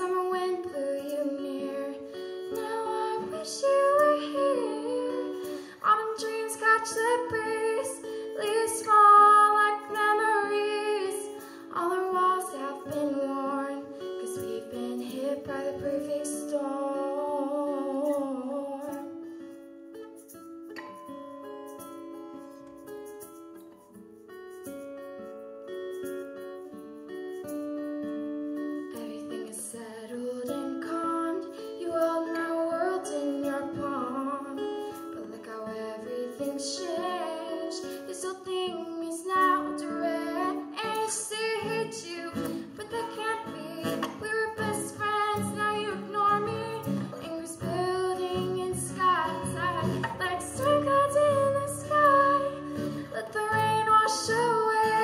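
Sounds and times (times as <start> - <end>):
girl singing: 0.0 - 19.6, 28.8 - 55.0
acoustic guitar: 0.0 - 55.0.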